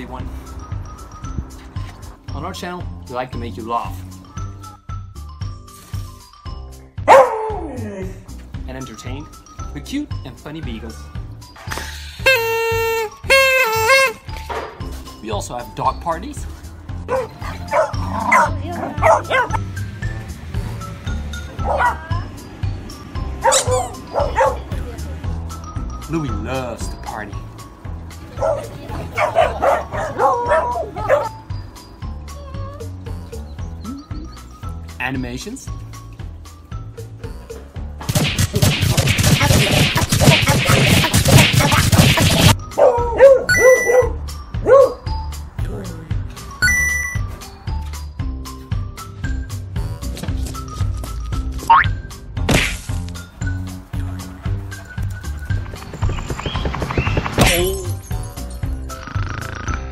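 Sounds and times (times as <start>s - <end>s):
background music with steady beat: 0.0s - 59.2s
dogs barking and baying: 7.0s - 7.8s, 17.0s - 19.8s, 21.4s - 22.2s, 23.2s - 24.8s, 28.2s - 34.5s, 41.7s - 45.3s.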